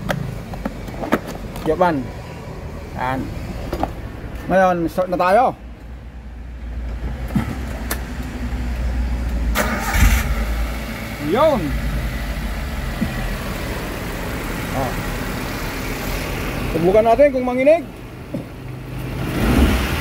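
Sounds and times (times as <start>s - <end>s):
car engine idling: 7.8s - 19.0s
car engine cranking and starting: 9.2s - 16.7s.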